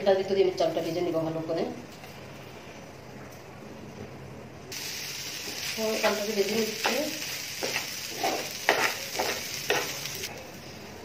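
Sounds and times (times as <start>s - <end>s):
rice sizzling in a pan: 4.7s - 10.4s
spatula scraping a pan: 6.8s - 10.2s.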